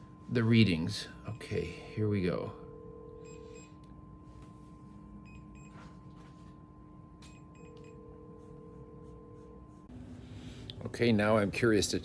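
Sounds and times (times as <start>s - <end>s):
faint electronic tones: 0.0s - 10.2s
phone ringback tone: 1.3s - 9.9s.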